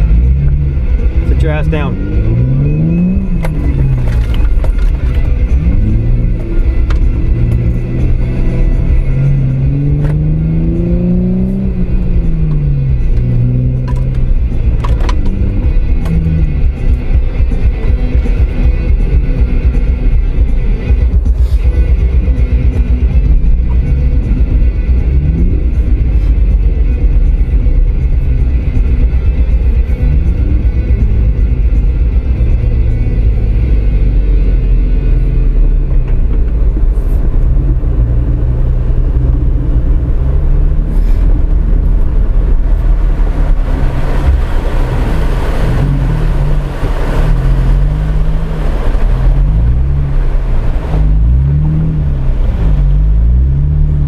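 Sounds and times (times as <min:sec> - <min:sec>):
off-road vehicle engine revving: 0:00.0 - 0:54.0.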